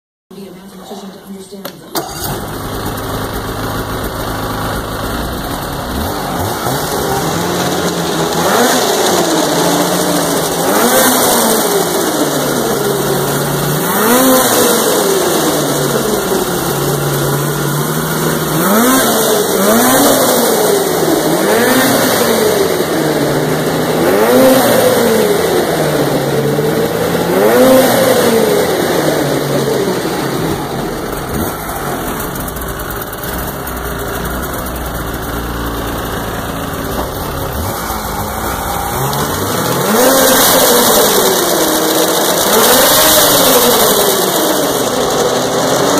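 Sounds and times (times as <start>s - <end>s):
snowmobile engine revving: 2.0s - 45.9s.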